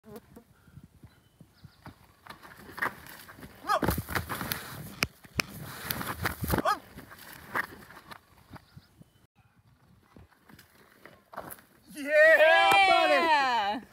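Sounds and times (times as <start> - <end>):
unicycle knocking and scraping on rock: 1.8 - 8.6.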